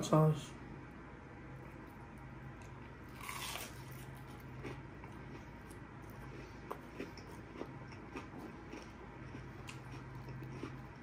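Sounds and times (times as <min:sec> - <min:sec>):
faint low hum: 0:00.0 - 0:11.0
quiet chewing: 0:01.6 - 0:11.0
crunchy bite into fried chicken: 0:03.1 - 0:05.4.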